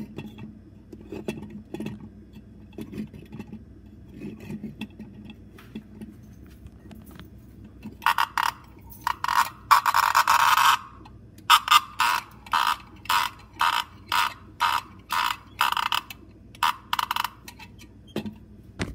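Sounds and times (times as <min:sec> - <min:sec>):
hand-cranked toy rasping: 0:08.0 - 0:10.9, 0:11.5 - 0:17.8.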